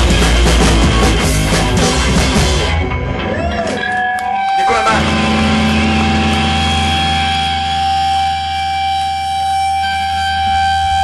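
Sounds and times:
high guitar feedback tone: 0.0s - 11.0s
low bass drone: 4.9s - 11.0s.

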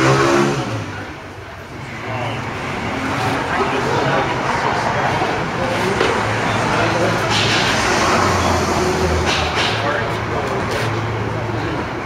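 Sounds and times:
vehicle engines rumbling: 0.0s - 12.0s
indistinct talking: 0.9s - 12.0s.

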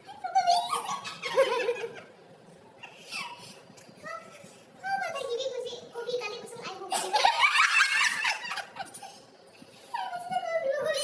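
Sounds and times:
women laughing: 0.8s - 2.2s, 7.0s - 9.3s.

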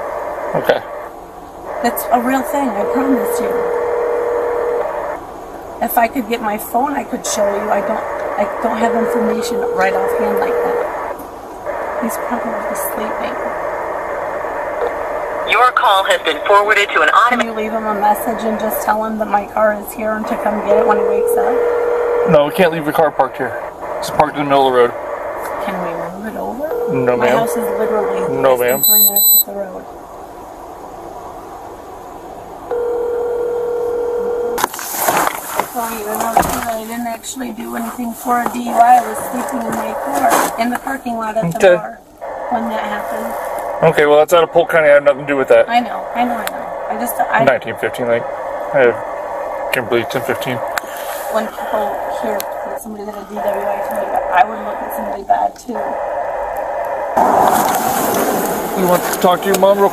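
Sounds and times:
low background hiss: 0.0s - 56.4s
steady electronic tone: 1.7s - 5.2s, 6.8s - 15.5s, 17.2s - 29.5s
camera rustling and rubbing: 34.6s - 41.1s.

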